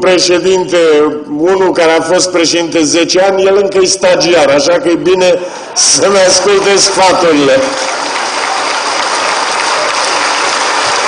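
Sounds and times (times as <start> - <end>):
audience applauding in hall: 6.1 - 11.0.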